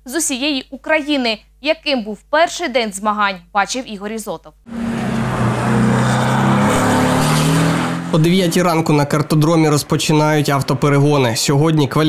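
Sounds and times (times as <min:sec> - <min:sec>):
race car engine accelerating: 0:04.7 - 0:11.3.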